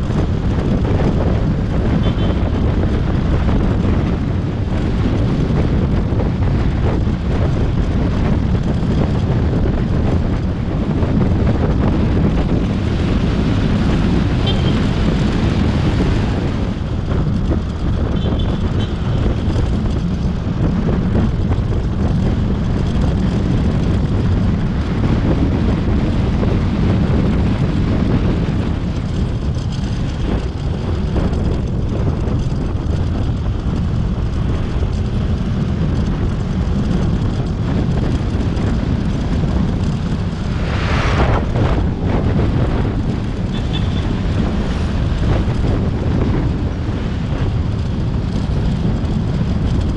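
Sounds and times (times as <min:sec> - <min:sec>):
motorbike engine and road rumble: 0:00.0 - 0:49.9
wind buffeting microphone: 0:00.0 - 0:49.9.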